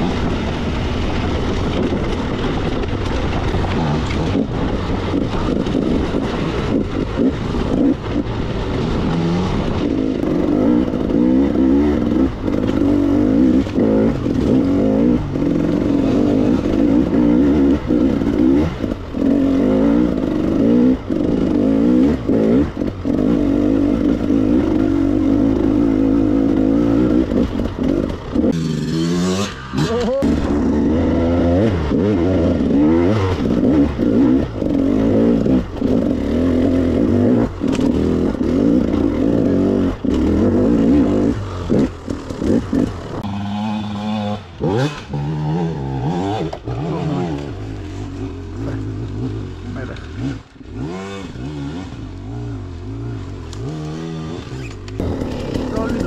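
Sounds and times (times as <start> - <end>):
two-stroke dirt bike engine revving: 0.0 - 56.0.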